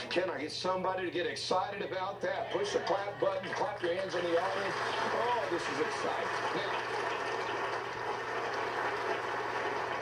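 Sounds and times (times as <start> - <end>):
studio audience applauding: 2.8 - 10.0.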